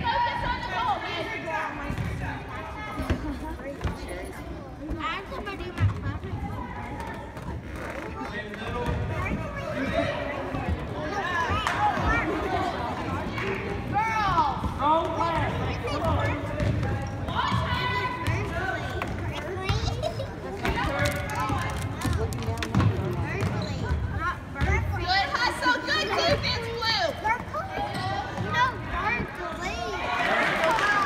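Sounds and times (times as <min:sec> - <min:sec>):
spectators' voices echoing: 0:00.0 - 0:31.0
sneakers squeaking: 0:14.6 - 0:21.1, 0:22.7 - 0:29.9.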